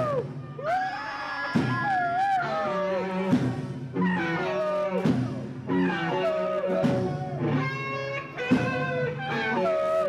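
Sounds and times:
live hard rock band: 0.0s - 10.0s
electric guitar lead: 2.1s - 10.0s.

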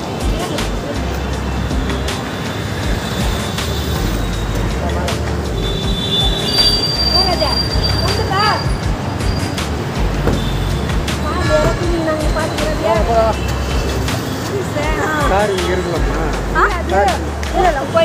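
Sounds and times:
people calling greetings: 0.0s - 18.0s.

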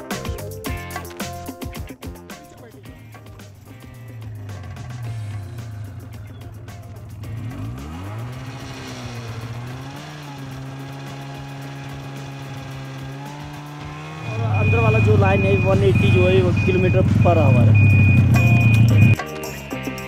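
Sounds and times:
snowmobile engine running: 2.5s - 19.2s.

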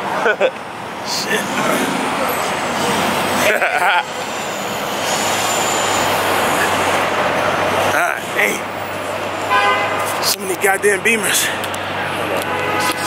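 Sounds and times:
car engines running: 0.0s - 13.0s
car horn: 9.5s - 10.2s, 12.4s - 13.0s.

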